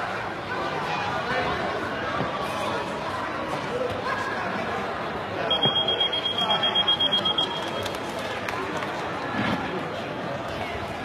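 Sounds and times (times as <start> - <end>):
hall chatter: 0.0 - 11.0
electronic timer beeping: 5.5 - 7.7.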